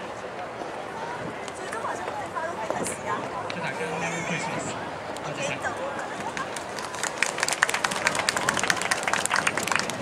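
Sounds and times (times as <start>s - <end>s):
crowd voices: 0.0s - 10.0s
audience applause: 6.0s - 10.0s.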